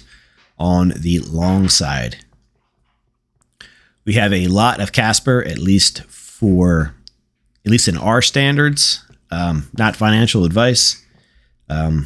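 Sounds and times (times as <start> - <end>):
short breath: 0.0 - 0.6, 3.6 - 4.0, 11.0 - 11.6
man speaking: 0.0 - 2.4, 4.0 - 11.1, 11.7 - 12.0.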